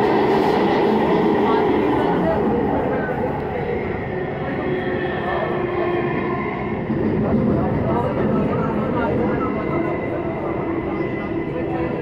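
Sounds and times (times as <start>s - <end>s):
train running rumble: 0.0s - 12.0s.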